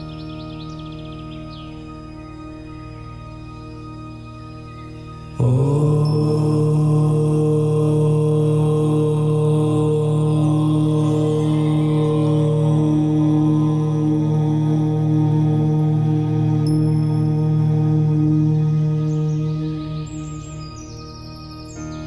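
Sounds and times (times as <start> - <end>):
person chanting om: 0.0 - 22.0
soft ambient meditation music: 0.0 - 22.0.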